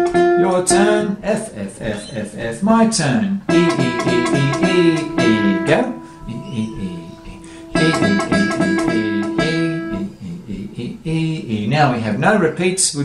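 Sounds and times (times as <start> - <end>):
guitar string plucked repeatedly: 0.0 - 2.2, 3.4 - 10.2.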